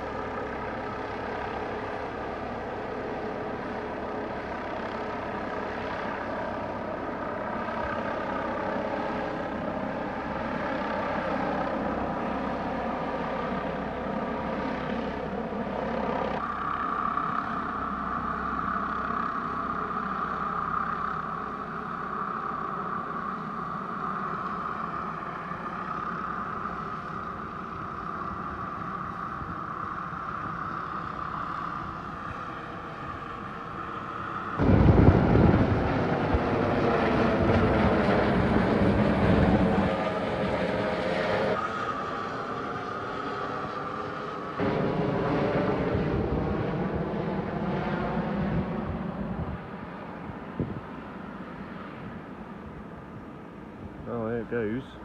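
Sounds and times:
helicopter engines and rotor whining: 0.0s - 55.0s.

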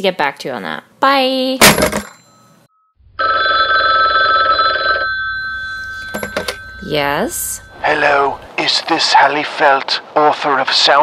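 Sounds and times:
telephone bell ringing: 3.2s - 8.4s.

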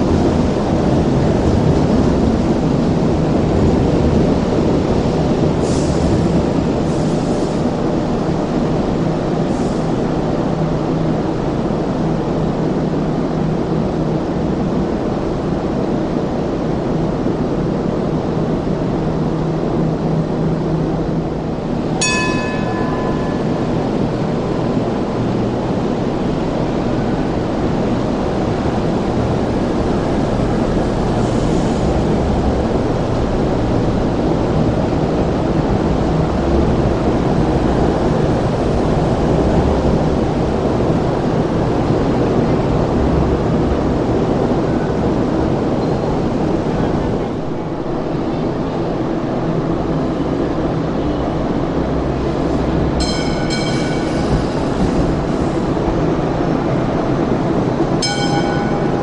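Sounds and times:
train wheels and motors rumbling: 0.0s - 59.0s
metallic ding: 22.0s - 23.8s, 53.0s - 54.0s, 58.0s - 59.0s.

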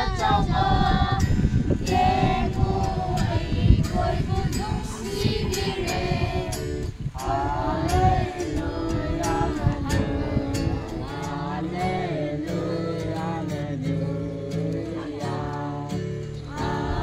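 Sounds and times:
children singing: 0.0s - 17.0s
guitar accompaniment: 0.0s - 17.0s.

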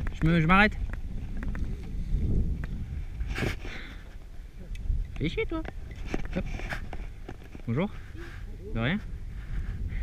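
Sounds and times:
bike rolling on dirt trail: 0.0s - 10.0s
wind rumble on microphone: 0.0s - 10.0s.

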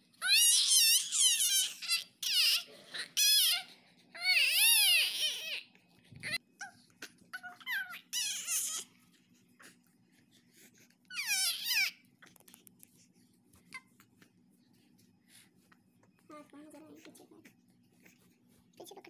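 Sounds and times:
baby squealing: 0.2s - 6.4s, 7.4s - 8.9s, 11.1s - 12.0s.

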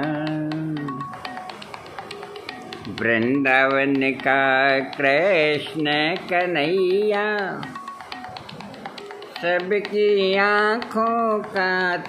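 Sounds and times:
faint music: 0.0s - 12.0s
light rhythmic taps: 0.0s - 12.0s.

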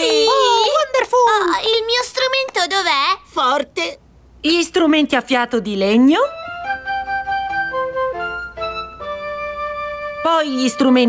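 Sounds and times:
flute playing a tune: 6.3s - 11.0s.

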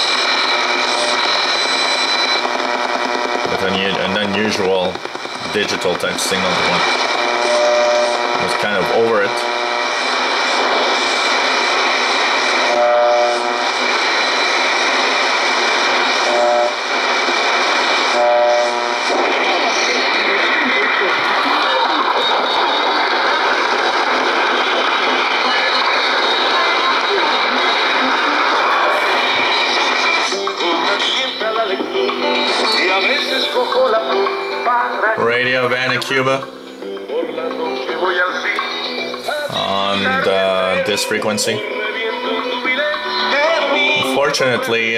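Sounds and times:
radio static: 0.0s - 44.9s
radio station audio: 0.0s - 44.9s
brief radio tones: 5.2s - 11.6s, 12.2s - 15.0s, 15.8s - 17.1s, 17.9s - 34.0s.

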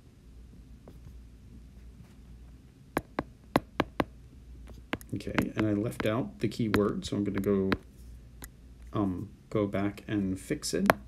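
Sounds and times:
faint low hum: 0.0s - 11.0s
stylus tapping on glass screen: 3.0s - 4.1s, 4.7s - 7.8s.

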